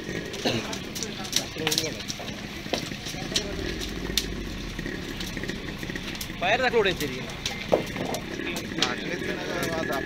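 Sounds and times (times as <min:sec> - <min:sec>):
fire popping and cracking: 0:00.0 - 0:10.0
low engine-like rumble: 0:02.1 - 0:10.0.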